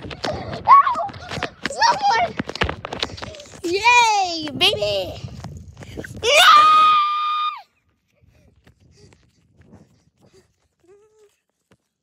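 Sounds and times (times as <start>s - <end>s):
child screaming: 6.2s - 7.6s.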